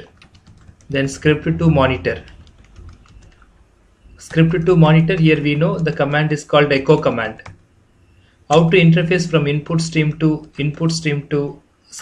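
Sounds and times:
faint keyboard typing clicks: 0:00.0 - 0:01.0, 0:02.2 - 0:03.5.

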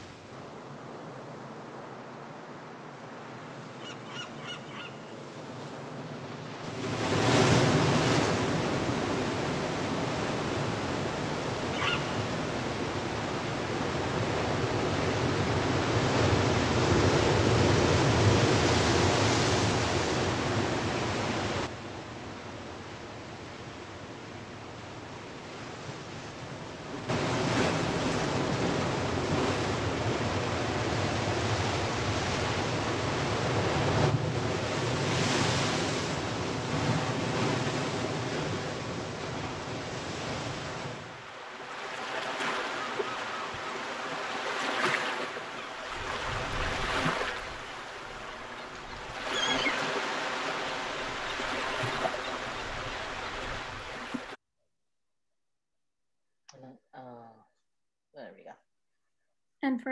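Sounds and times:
wind: 0:00.0 - 0:54.4
surf breaking on a beach: 0:05.4 - 0:23.3, 0:24.1 - 0:54.4.

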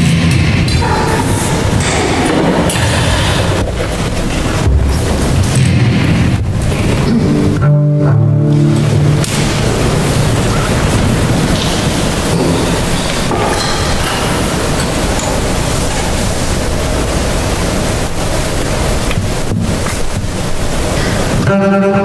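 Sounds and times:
bowed double bass: 0:04.5 - 0:13.1.

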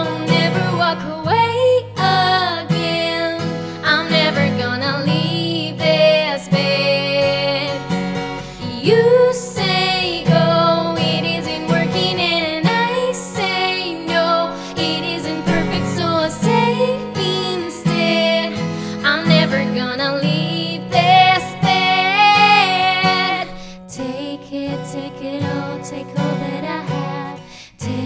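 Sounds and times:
acoustic guitar strumming: 0:00.0 - 0:28.0
woman singing a pop ballad: 0:00.0 - 0:28.0.

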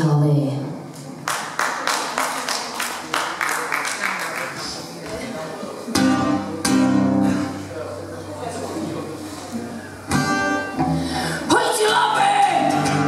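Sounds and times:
acoustic guitar chords strummed: 0:05.9 - 0:07.7, 0:10.1 - 0:11.3, 0:12.6 - 0:13.0.

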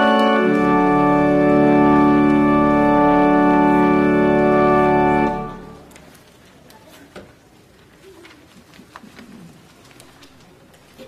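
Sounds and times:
low murmuring voices: 0:05.6 - 0:11.0
small clicks and rustles: 0:05.8 - 0:11.0.

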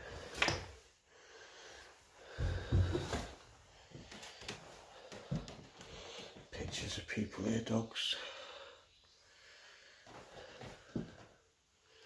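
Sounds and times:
footsteps on wooden floorboards: 0:02.2 - 0:06.8, 0:10.1 - 0:11.4.

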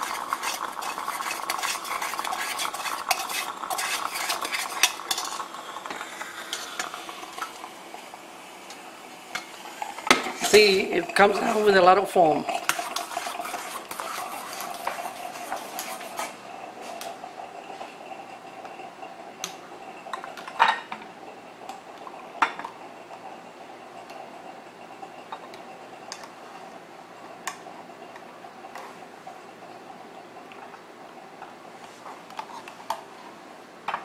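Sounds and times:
spoon stirring in metal pot: 0:00.0 - 0:05.5, 0:10.1 - 0:16.4
faint steady hum: 0:00.0 - 0:34.0.

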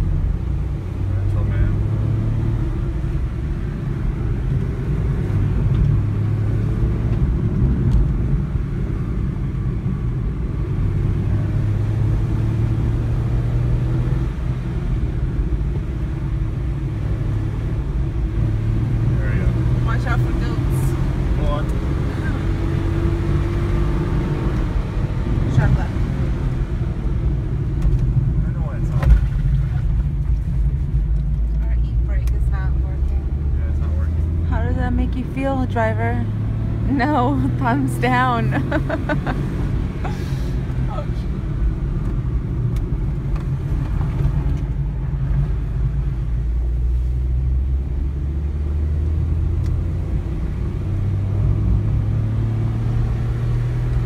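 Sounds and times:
car engine accelerating: 0:00.0 - 0:54.0
road noise: 0:00.0 - 0:54.0.

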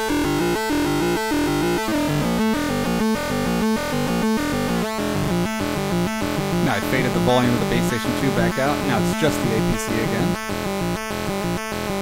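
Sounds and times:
synthesizer arpeggio: 0:00.0 - 0:10.8
synthesizer square-wave tones: 0:00.0 - 0:12.0.

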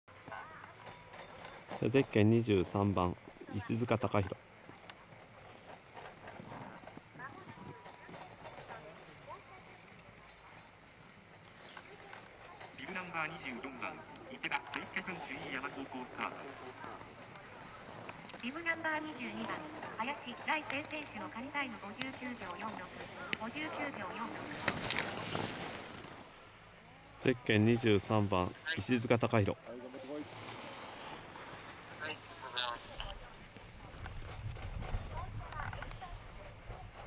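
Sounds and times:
distant voices: 0:00.1 - 0:37.0
low outdoor background sound: 0:00.1 - 0:37.0
short hissing scrapes: 0:29.9 - 0:32.4
wind noise on microphone: 0:33.7 - 0:37.0.

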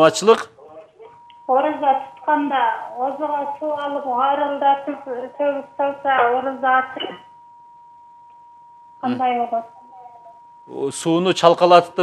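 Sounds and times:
steady electronic tone: 0:01.0 - 0:12.0.

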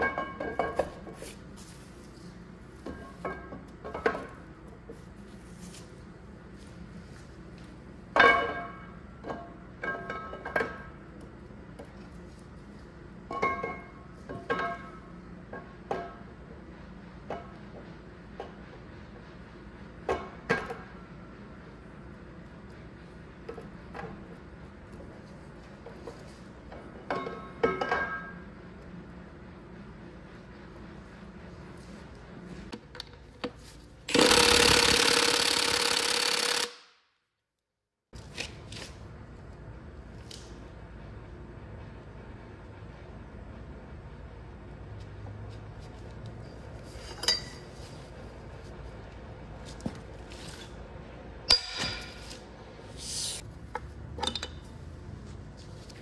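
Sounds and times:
impact wrench running: 0:34.1 - 0:37.0.

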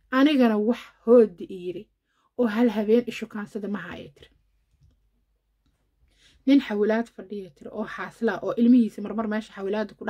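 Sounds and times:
woman speaking: 0:00.1 - 0:04.3, 0:06.4 - 0:10.0.

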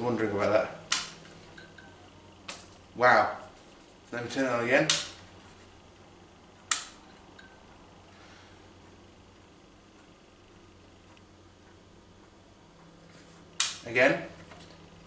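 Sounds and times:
lamp rocker switch clicks: 0:00.9 - 0:01.2, 0:04.8 - 0:05.2, 0:06.6 - 0:07.0, 0:13.6 - 0:13.9.

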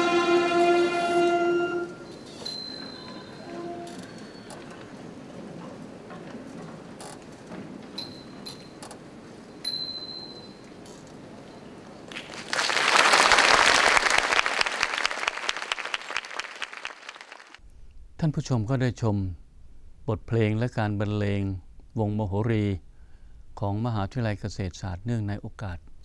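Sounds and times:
audience applause: 0:12.1 - 0:17.6.

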